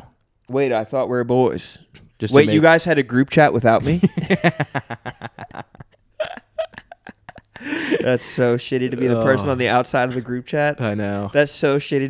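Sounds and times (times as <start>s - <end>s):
men laughing: 3.8s - 9.4s.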